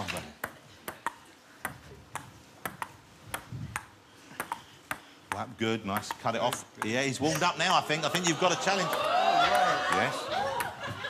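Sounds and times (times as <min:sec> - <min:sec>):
table tennis ball clicking: 0:00.4 - 0:07.5.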